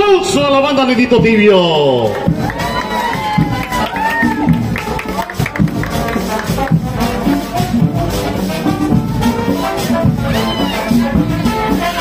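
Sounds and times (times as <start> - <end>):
marching drums and percussion: 0.2 - 12.0
brass playing: 2.3 - 12.0.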